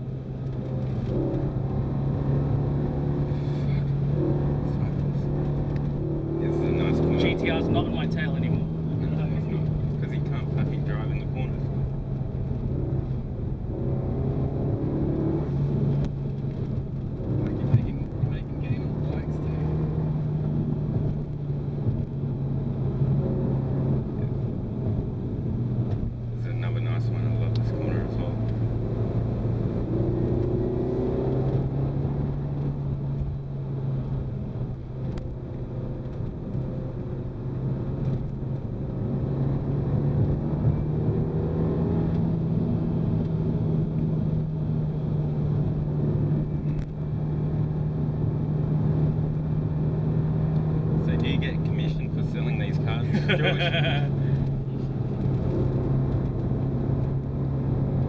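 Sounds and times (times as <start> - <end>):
car engine from inside cabin: 0.0 - 58.0.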